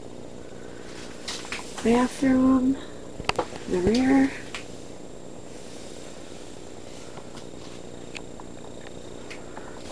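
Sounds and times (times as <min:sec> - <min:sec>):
steady low hum: 0:00.0 - 0:09.9.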